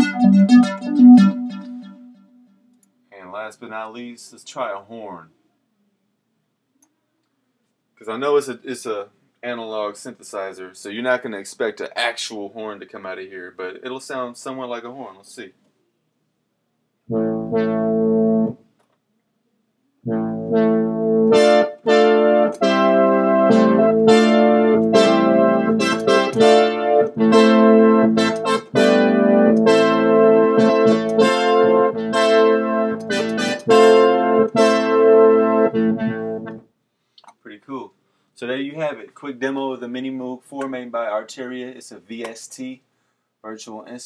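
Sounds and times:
synthesizer horn notes and chords: 0:00.0 - 0:02.7, 0:17.1 - 0:18.6, 0:20.1 - 0:36.6.

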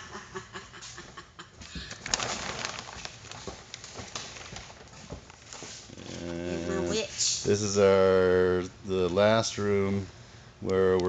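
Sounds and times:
plastic sheeting rustling: 0:01.8 - 0:06.2.

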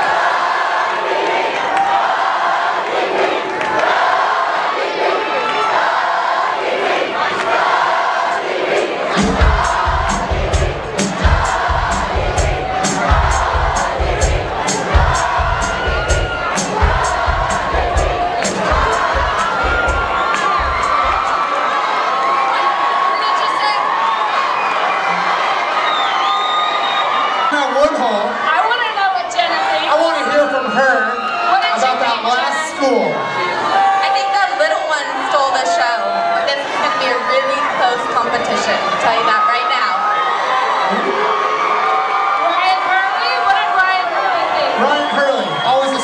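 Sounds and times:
crowd cheering and screaming: 0:00.0 - 0:46.0
drum kit beat: 0:08.2 - 0:21.5.

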